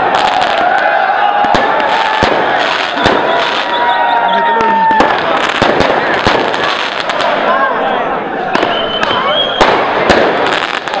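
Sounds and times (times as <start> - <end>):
sharp bangs and cracks: 0.0 - 3.9, 4.9 - 7.5, 8.5 - 11.0
crowd shouting: 0.0 - 11.0
steady high whistle: 2.9 - 4.7, 8.6 - 9.7.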